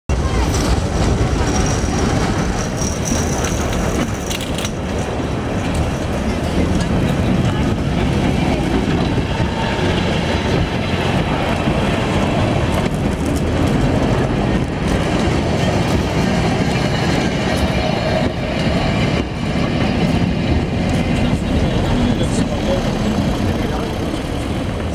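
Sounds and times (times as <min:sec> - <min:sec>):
crowd chattering: 0:00.1 - 0:24.9
tram wheels clicking over rails: 0:00.1 - 0:24.9.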